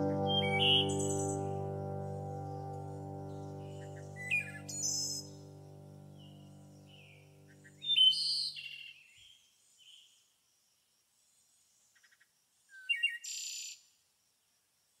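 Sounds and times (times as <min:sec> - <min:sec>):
soft music: 0:00.0 - 0:08.3
birds chirping: 0:00.0 - 0:08.6.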